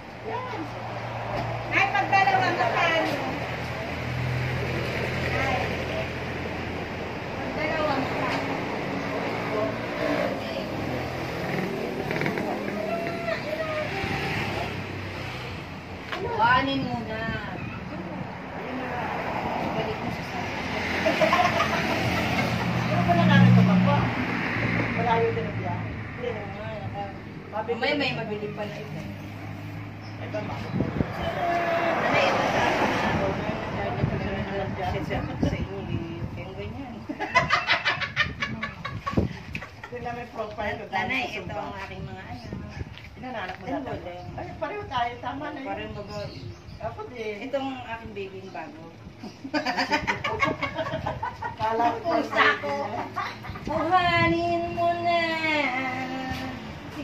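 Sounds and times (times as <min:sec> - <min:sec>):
voices talking: 0:00.0 - 0:57.0.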